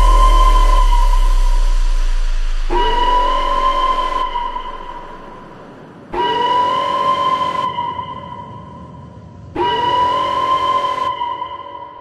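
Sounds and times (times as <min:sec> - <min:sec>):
deep sub-bass hit: 0:00.0 - 0:05.9
sustained synth tone: 0:00.0 - 0:06.3.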